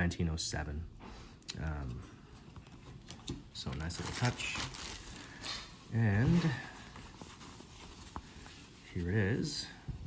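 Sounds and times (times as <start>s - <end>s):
hands rustling a cloth pouch: 2.2s - 10.0s.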